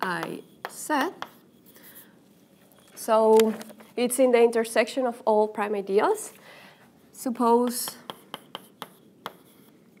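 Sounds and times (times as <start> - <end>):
chalk scratching on a blackboard: 0.0 - 2.1, 8.1 - 9.8.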